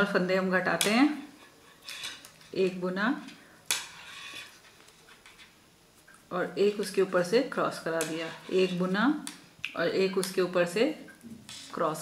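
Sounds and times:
scraping rustle: 1.2s - 2.6s, 3.7s - 5.6s.

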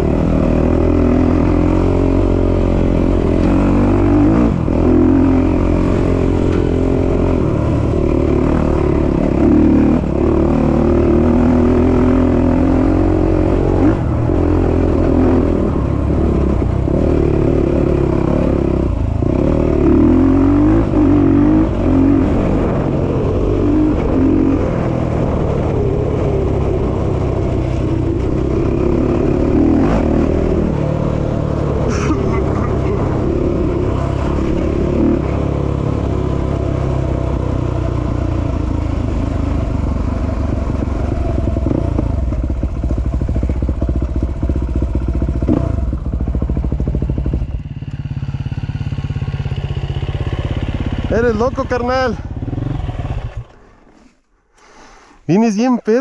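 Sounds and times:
dirt bike engine running: 0.0s - 54.1s
wind: 0.0s - 56.0s.

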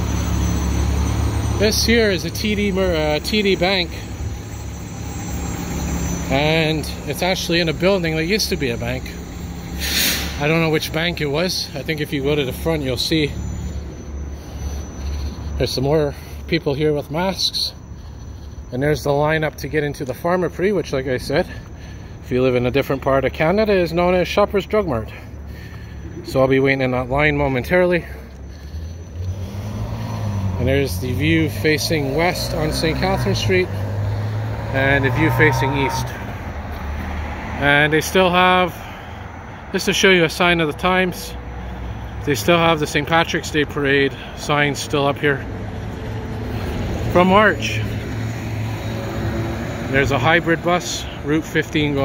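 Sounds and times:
street traffic: 0.0s - 52.0s
vehicle engine rumble: 0.0s - 52.0s.

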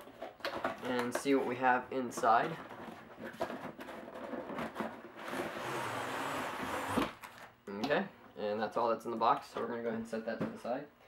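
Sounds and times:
cardboard sliding scrape: 5.2s - 7.2s.

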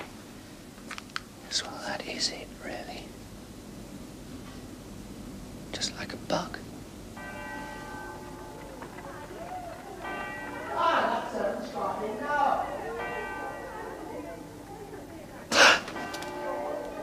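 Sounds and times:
man whispering: 1.5s - 3.1s, 5.7s - 6.6s
bell ringing: 7.2s - 15.2s, 15.9s - 17.0s.

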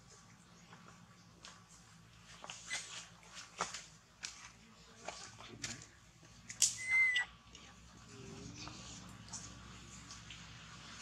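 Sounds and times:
high whistle-like animal call: 6.7s - 7.3s.

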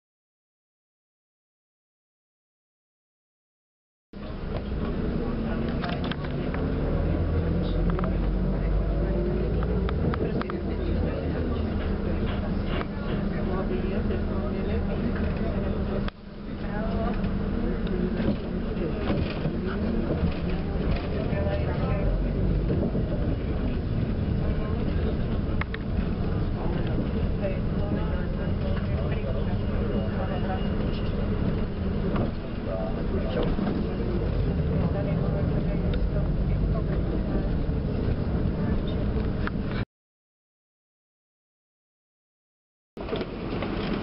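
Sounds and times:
background voices: 4.2s - 39.8s
bus engine and road noise: 4.2s - 39.9s, 43.0s - 44.0s.

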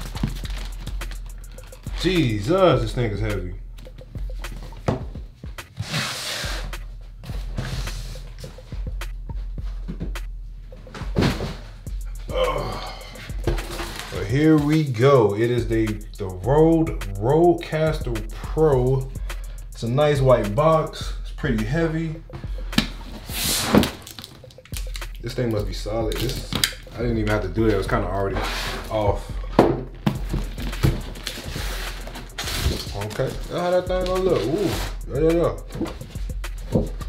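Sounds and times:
packing paper and cardboard rustling: 0.0s - 2.5s, 12.9s - 14.8s, 23.1s - 29.3s, 29.9s - 37.0s
background music with bass line: 0.0s - 37.0s
box thump: 10.9s - 11.8s, 13.4s - 14.1s, 29.5s - 31.5s
box handling: 13.5s - 14.2s, 30.0s - 33.6s
cardboard box scraping: 23.2s - 24.0s, 28.3s - 29.1s, 30.4s - 33.6s, 34.3s - 35.0s.

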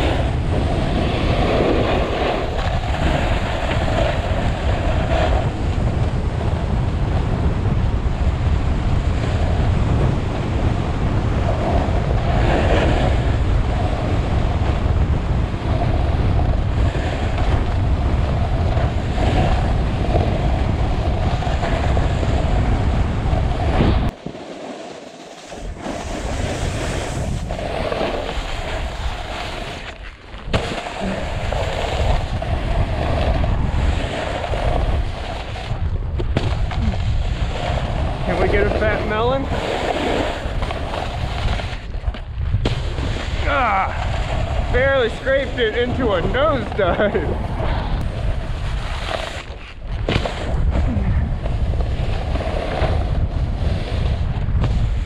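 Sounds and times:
snowboard scraping over snow: 0.0s - 55.0s
wind rushing over microphone: 0.0s - 55.0s.

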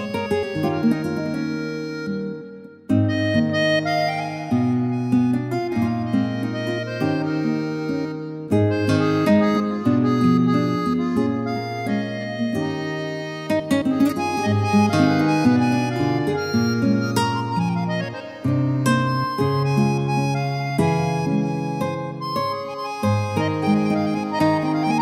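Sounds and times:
keyboard instrumental music: 0.0s - 25.0s.

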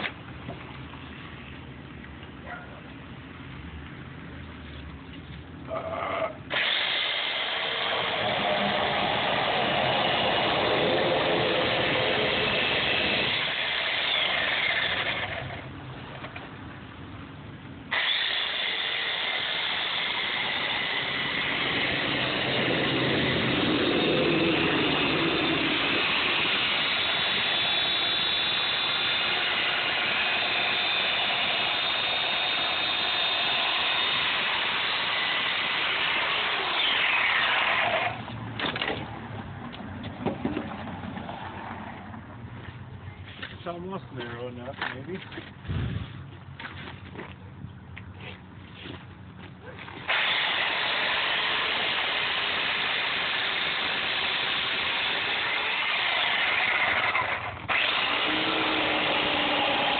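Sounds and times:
chainsaw carving foam: 6.2s - 15.7s, 17.9s - 38.2s, 50.0s - 59.9s.

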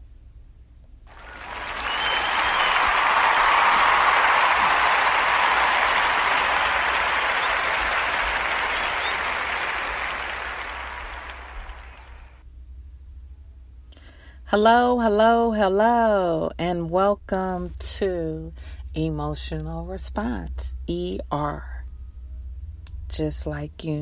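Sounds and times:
crowd applause: 1.1s - 12.4s
faint whistle: 1.1s - 12.4s.

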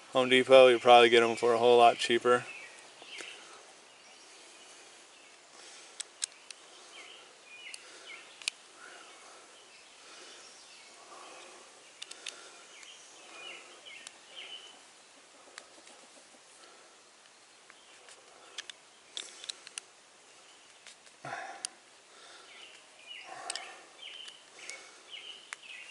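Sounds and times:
faint bird chirps: 0.7s - 5.4s, 6.2s - 19.5s, 20.3s - 25.9s.

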